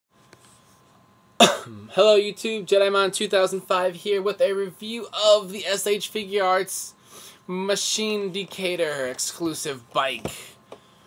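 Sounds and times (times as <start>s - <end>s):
man coughing: 1.4s - 2.0s.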